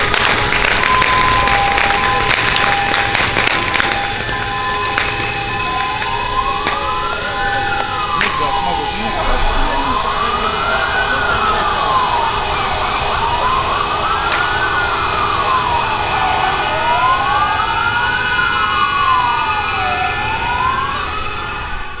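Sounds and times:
air-raid sirens wailing: 0.0 - 22.0.

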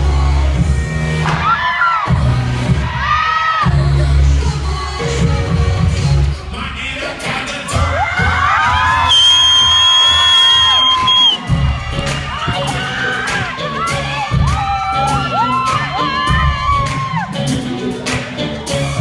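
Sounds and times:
audience cheering and shouting: 1.2 - 3.8, 7.6 - 19.0
dance music with bass beat: 7.1 - 19.0
high-pitched screams and whoops: 7.8 - 11.5, 12.4 - 17.5.

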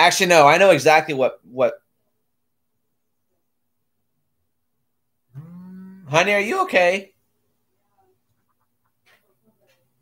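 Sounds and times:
low-pitched animal cry: 5.3 - 6.2.

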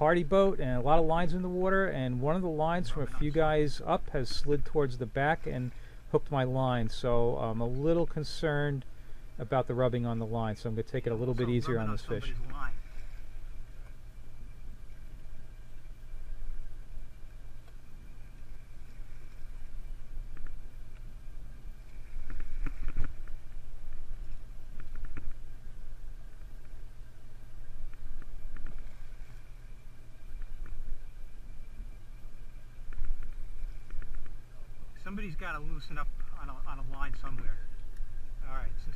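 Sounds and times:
boat engine drone: 0.0 - 38.9.

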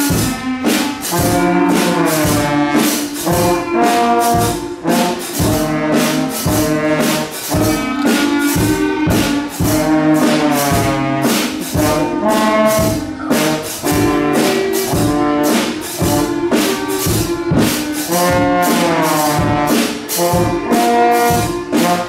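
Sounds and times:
brass instruments playing melody: 0.0 - 22.0
steady drum beat: 0.0 - 22.0.

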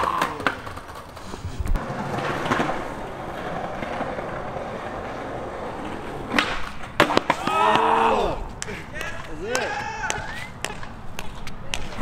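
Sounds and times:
skateboard clacks: 0.0 - 7.9, 8.5 - 12.0
skateboard wheels rolling on concrete: 0.0 - 12.0
voices shouting: 7.3 - 10.6.

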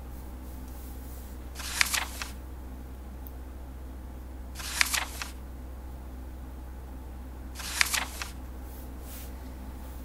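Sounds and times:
steady low hum: 0.0 - 10.0
page-turn swish with snap: 1.6 - 2.4, 4.6 - 5.4, 7.6 - 8.4.

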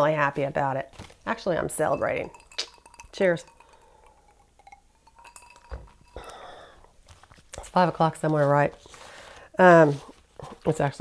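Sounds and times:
glass clinking: 1.5 - 6.9
sipping from a glass: 2.1 - 6.9.

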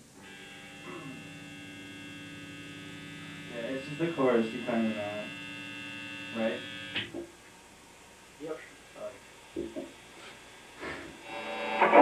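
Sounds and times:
guitar amplifier hum and buzz: 0.0 - 12.0.

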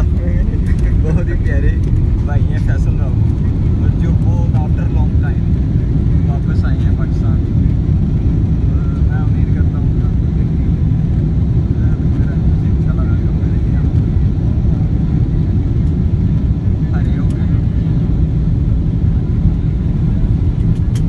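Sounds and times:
airplane cabin rumble: 0.0 - 21.0.

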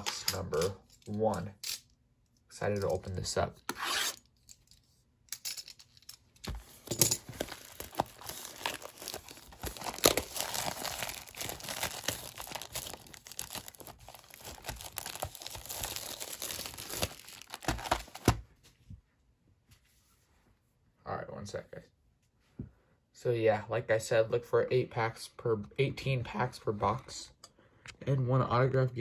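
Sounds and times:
shrink-wrap crinkling and tearing: 6.5 - 18.4.

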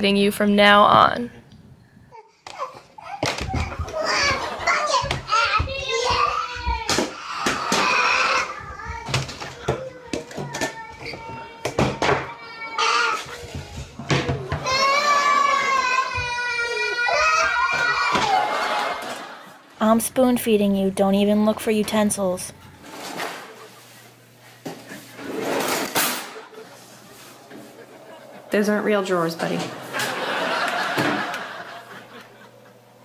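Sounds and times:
young child whining cry: 5.3 - 18.8
rustling scrape: 22.7 - 26.0.

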